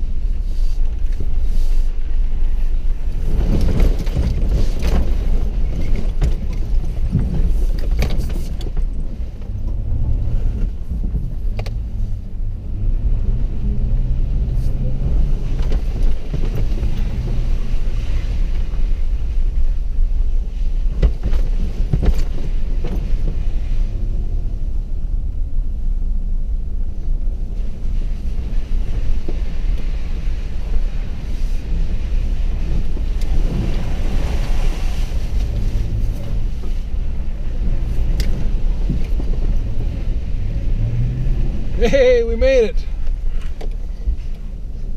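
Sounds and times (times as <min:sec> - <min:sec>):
vehicle engine and tyres rumbling: 0:00.0 - 0:44.9.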